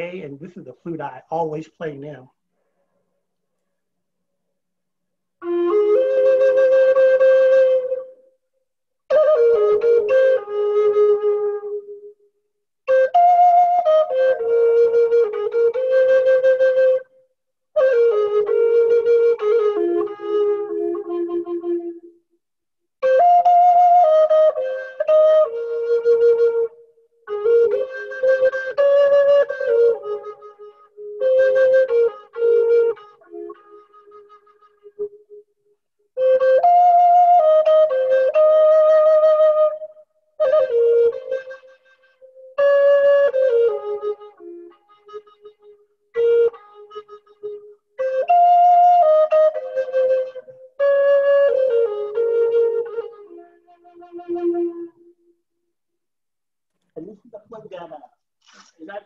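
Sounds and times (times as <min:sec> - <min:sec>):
wooden flute playing slow melody: 0:05.4 - 0:08.4, 0:09.1 - 0:22.3, 0:23.0 - 0:55.4.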